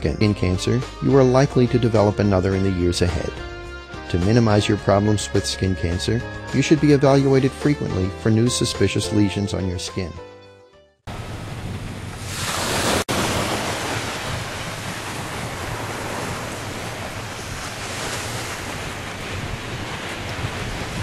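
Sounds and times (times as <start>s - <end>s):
waves breaking on beach: 11.1s - 21.0s.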